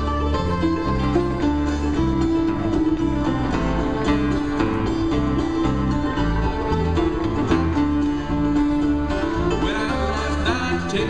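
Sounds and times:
bowed fiddle: 0.0s - 11.0s
plucked guitar: 0.0s - 11.0s
plucked string instruments: 0.0s - 11.0s.

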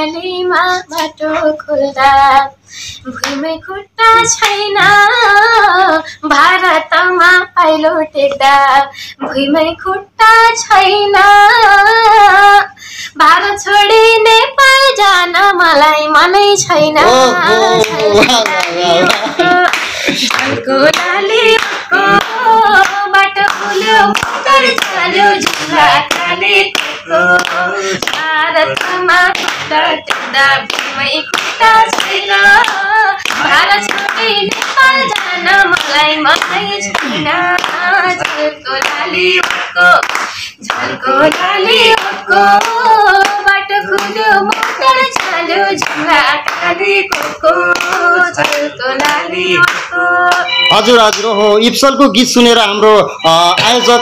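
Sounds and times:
hand clapping: 3.2s - 3.4s, 17.0s - 51.4s
person singing: 16.6s - 51.8s, 52.9s - 54.0s.

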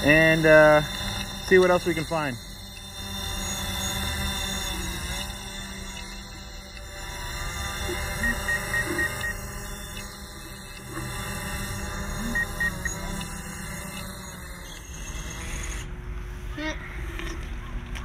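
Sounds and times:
drone propellers whining: 0.0s - 18.0s
short high beeps: 7.8s - 9.5s, 12.2s - 14.9s.

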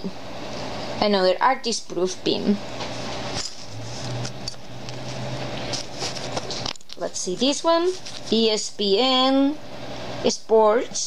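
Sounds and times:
low steady hum: 0.0s - 11.0s
metal pins rustling in fingers: 3.0s - 8.6s.

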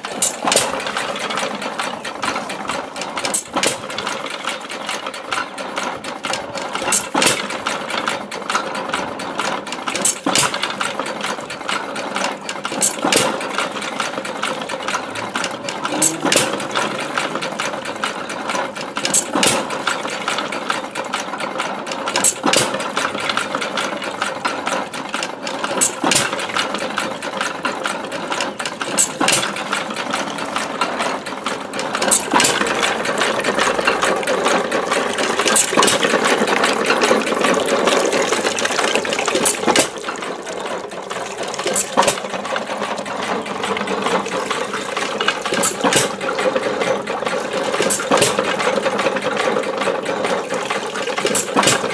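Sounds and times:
pump gearing clatter: 0.0s - 51.9s
water splashing into metal bucket: 28.8s - 51.9s.

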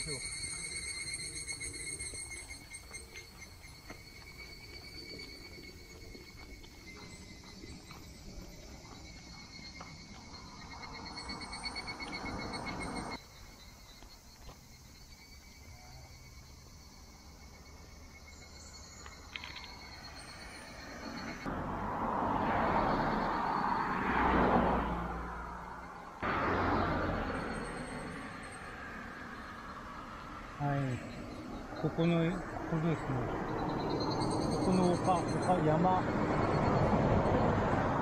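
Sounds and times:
cicadas calling: 0.0s - 38.0s
passing car rushing: 9.5s - 13.2s, 19.9s - 38.0s.

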